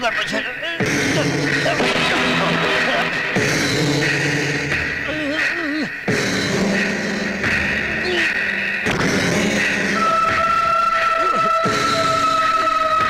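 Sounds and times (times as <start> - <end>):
eerie sustained music: 0.8 - 13.0
man's strangled cries: 5.0 - 6.1, 7.9 - 8.4, 10.0 - 13.0.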